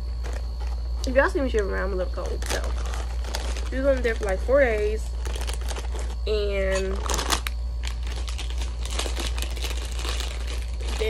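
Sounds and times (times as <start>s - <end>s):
foil snack bag crinkling: 0.0s - 11.0s.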